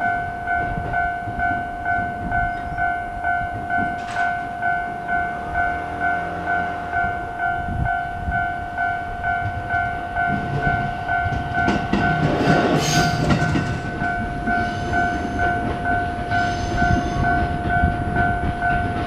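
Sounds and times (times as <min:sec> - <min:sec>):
level crossing warning bell: 0:00.0 - 0:19.0
train rumble and rail noise: 0:00.0 - 0:19.0.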